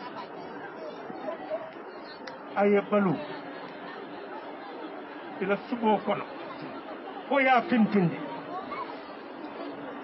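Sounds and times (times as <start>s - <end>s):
crowd chatter: 0.0s - 10.0s
man speaking: 7.3s - 8.2s.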